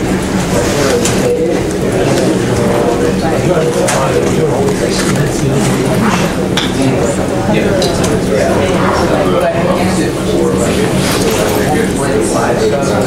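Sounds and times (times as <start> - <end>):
hubbub of overlapping voices: 0.0 - 13.0.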